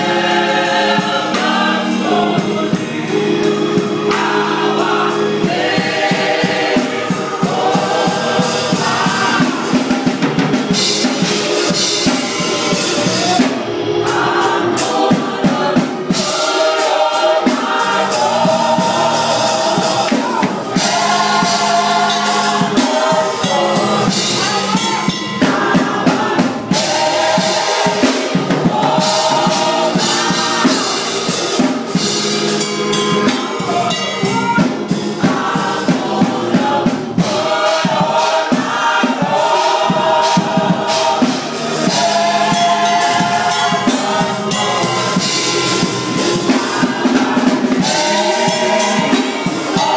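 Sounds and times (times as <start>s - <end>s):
choir singing in harmony: 0.0s - 49.9s.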